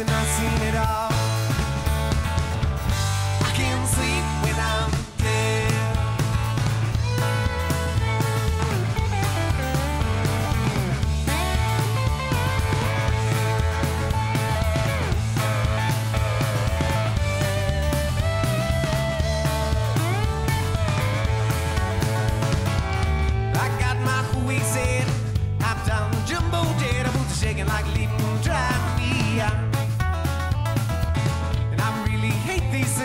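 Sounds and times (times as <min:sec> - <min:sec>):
band playing upbeat groove: 0:00.0 - 0:33.0
lap steel guitar solo: 0:06.9 - 0:23.6.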